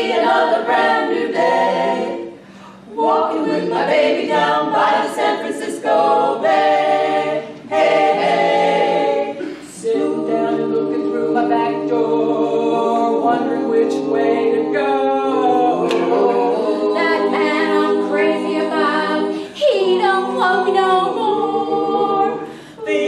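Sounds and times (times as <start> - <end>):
women singing in close harmony: 0.0 - 23.0.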